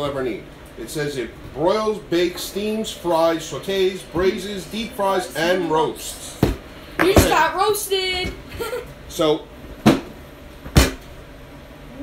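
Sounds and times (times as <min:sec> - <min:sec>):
sharp thump: 0:09.8 - 0:11.0.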